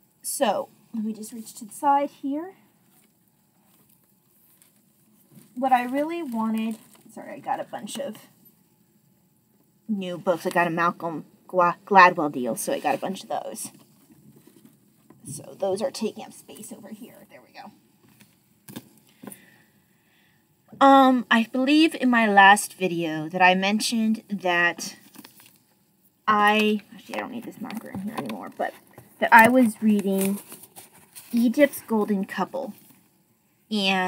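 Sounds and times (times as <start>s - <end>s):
faint soft rustles: 0.7s - 8.6s, 12.5s - 19.6s, 24.9s - 33.6s
woman saying um: 5.6s - 8.3s, 15.2s - 17.7s.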